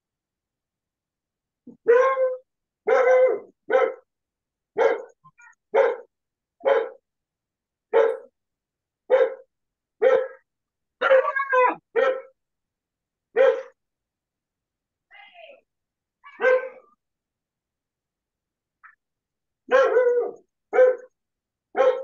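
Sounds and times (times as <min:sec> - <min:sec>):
dog barking: 0:01.7 - 0:04.1, 0:04.8 - 0:07.0, 0:07.9 - 0:08.3, 0:09.1 - 0:12.4, 0:13.3 - 0:13.8, 0:16.3 - 0:17.0, 0:19.7 - 0:22.0.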